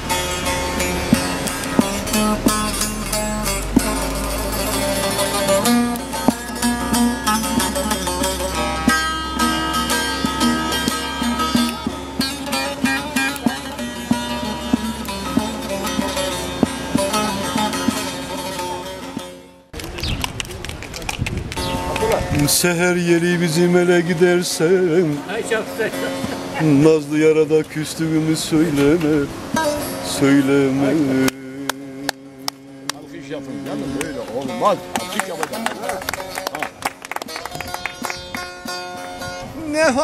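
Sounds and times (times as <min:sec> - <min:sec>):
long-necked lute strummed: 0:00.0 - 0:19.8, 0:21.6 - 0:40.0.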